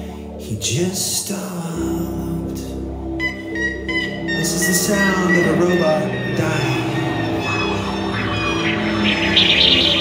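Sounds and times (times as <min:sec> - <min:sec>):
keyboard: 0:00.0 - 0:10.0.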